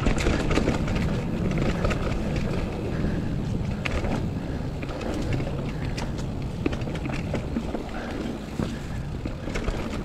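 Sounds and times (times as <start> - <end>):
bike frame rattles and clicks: 0.0 - 10.0
bike tyre rumble on dirt: 0.0 - 10.0
wind buffeting microphone: 0.0 - 10.0.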